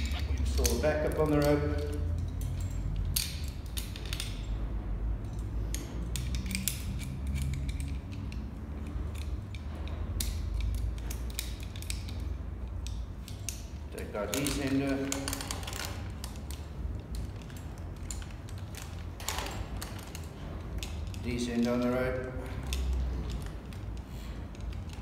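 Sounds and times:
metal hardware clicking and clinking: 0.0 - 25.0.

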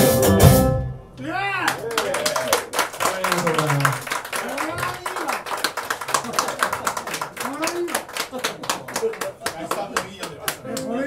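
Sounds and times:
audience clapping: 1.6 - 11.0.

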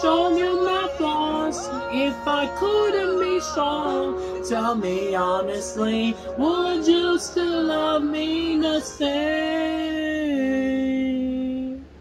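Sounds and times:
man singing long note: 0.0 - 11.9.

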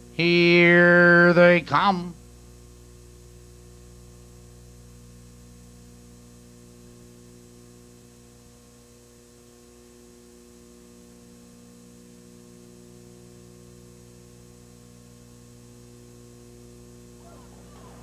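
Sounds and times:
electrical hum: 0.0 - 18.0.

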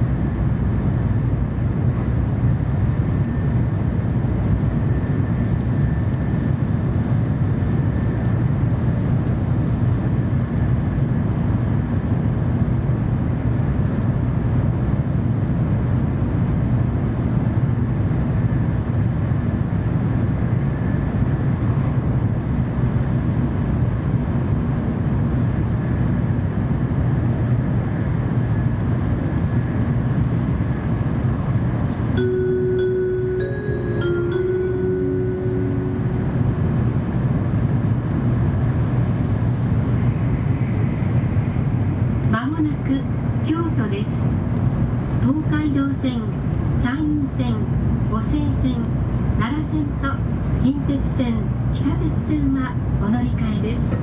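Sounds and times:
train cabin rumble: 0.0 - 54.0
faint high whine: 32.2 - 37.4.

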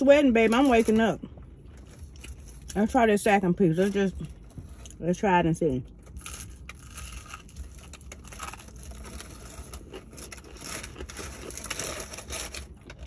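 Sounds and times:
crunching fried chicken: 5.8 - 13.0.

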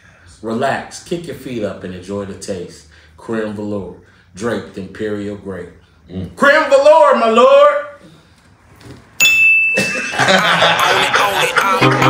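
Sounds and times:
bright bell-like ding: 9.2 - 10.2
hip-hop jingle with voices: 10.4 - 12.0.

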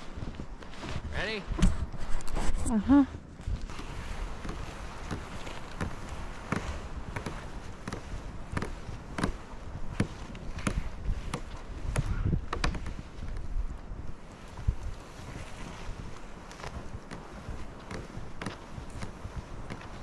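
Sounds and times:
footsteps crunching in snow: 0.0 - 20.0.

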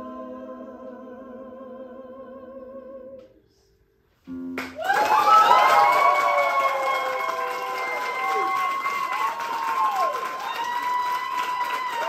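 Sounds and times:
audience applauding: 4.6 - 12.0
long whoops: 4.8 - 12.0.

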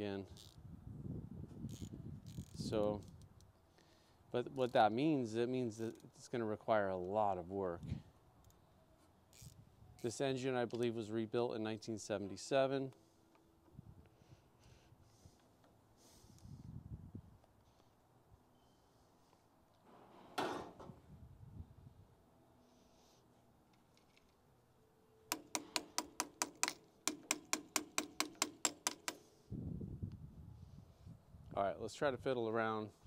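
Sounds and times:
ratchet wrench clicking: 25.3 - 29.2.

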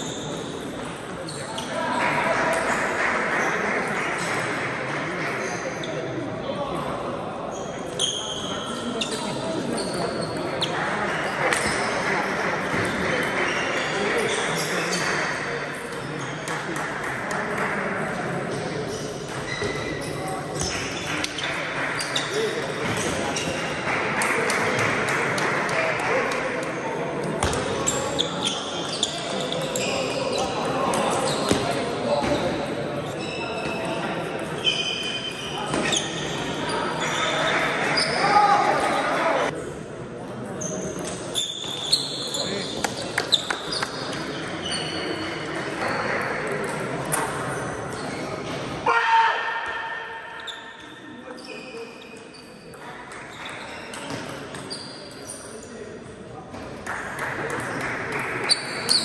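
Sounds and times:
background chatter: 0.0 - 59.0.

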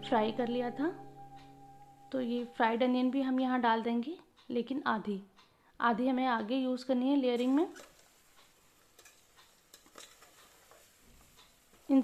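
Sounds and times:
spatula clicking on metal pot: 9.0 - 10.6.

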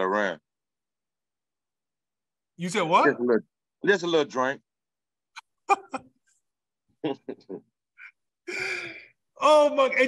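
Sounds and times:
men laughing: 5.4 - 6.2, 7.0 - 9.0.

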